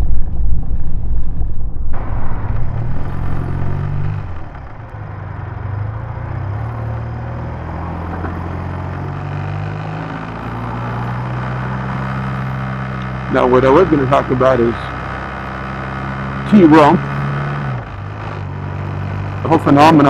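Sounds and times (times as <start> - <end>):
wind noise on microphone: 0.0 - 4.4
motorcycle engine cruising: 0.0 - 20.0.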